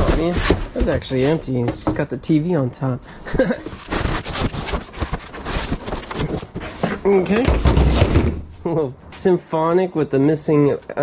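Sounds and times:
cardboard box rustling and scraping: 0.0 - 1.8, 3.7 - 8.4.

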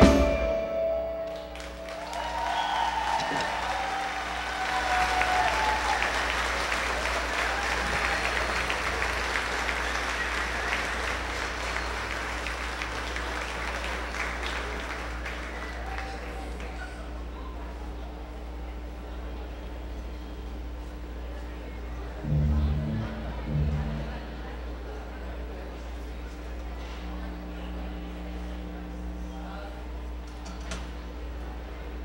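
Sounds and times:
audience applauding: 1.2 - 17.6
audience shouts: 1.5 - 11.1
steady low hum: 16.6 - 32.0.

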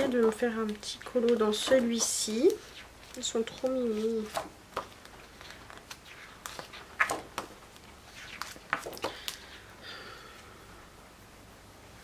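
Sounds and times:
paper pages rustling and flapping: 0.0 - 9.6.

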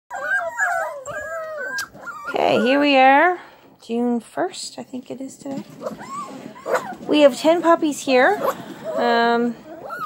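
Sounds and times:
puppies whining: 0.1 - 3.3, 5.7 - 10.0.

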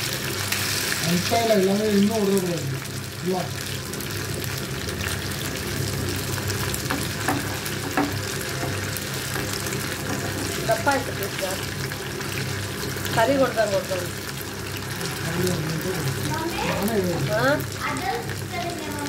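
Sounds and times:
fish sizzling in hot oil: 0.0 - 19.0.

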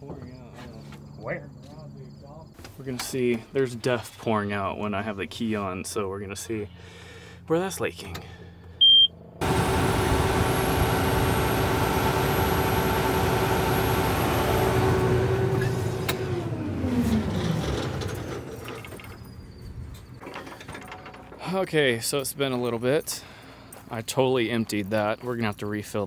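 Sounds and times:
diesel engine running: 8.4 - 20.0
short beep: 8.8 - 9.2.

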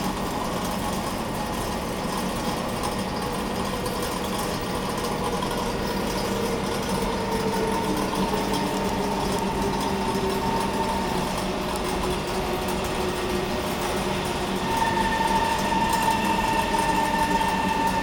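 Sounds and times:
train motor whine: 4.6 - 18.0.

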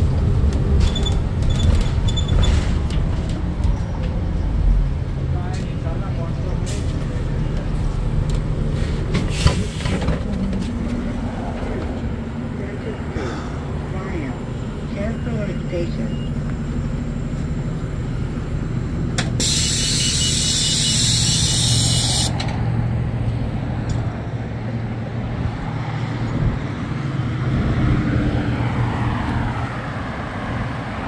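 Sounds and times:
bus diesel engine idling: 0.0 - 25.4
compressed air hissing: 19.4 - 22.4.

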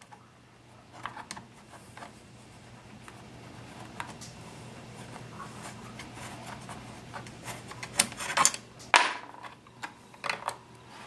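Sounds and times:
faint rubbing and scraping: 0.1 - 8.4.

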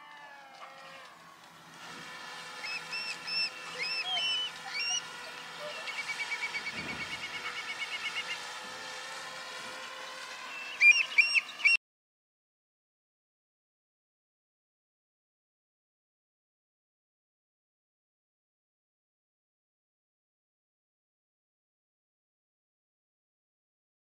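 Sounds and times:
quadcopter drone whine: 0.0 - 11.8
birds chirping and trilling: 2.6 - 8.4, 10.2 - 11.8.

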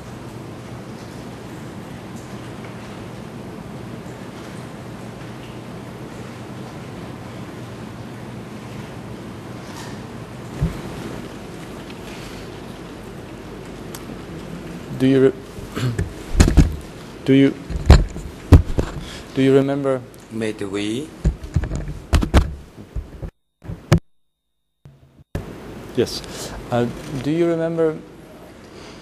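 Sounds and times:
microphone hiss and hum: 0.0 - 24.0, 24.9 - 29.0
dull thump: 16.0 - 16.8, 17.7 - 19.1.

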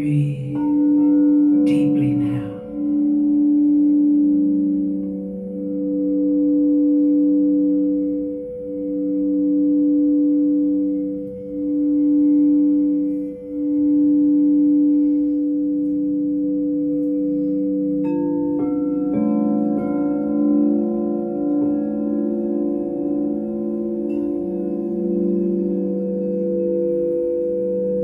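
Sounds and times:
crystal singing bowls ringing: 0.0 - 28.0.

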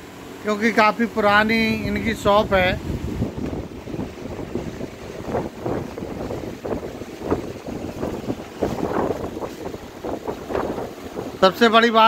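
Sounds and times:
low rumbling on microphone: 0.9 - 11.7.

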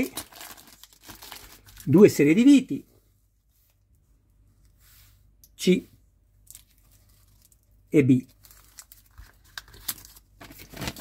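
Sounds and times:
plastic bags crinkling: 0.0 - 2.0, 6.4 - 11.0.

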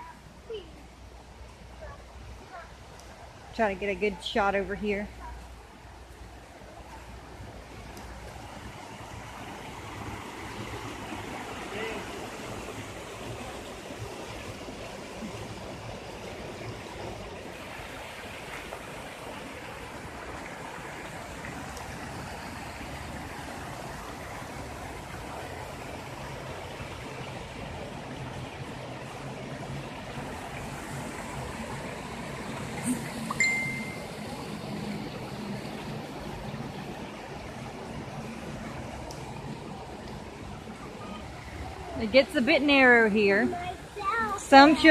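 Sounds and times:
creek running over rocks: 0.0 - 44.9.

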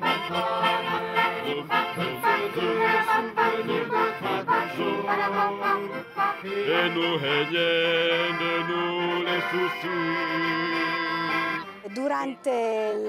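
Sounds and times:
folk choir singing in harmony: 0.0 - 11.8
accordion: 0.0 - 13.0.

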